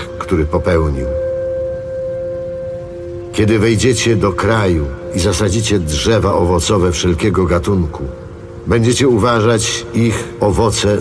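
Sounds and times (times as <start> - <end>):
droning background music: 0.0 - 11.0.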